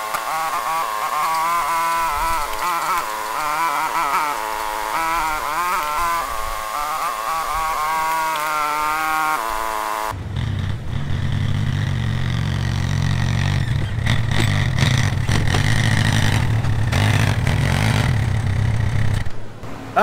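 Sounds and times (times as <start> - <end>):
quad bike engine rumbling: 0.0 - 20.0.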